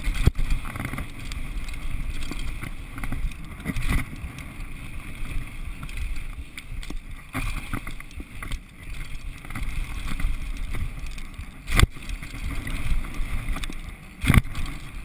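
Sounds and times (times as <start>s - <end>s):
bike tyres rumbling on dirt: 0.0s - 15.0s.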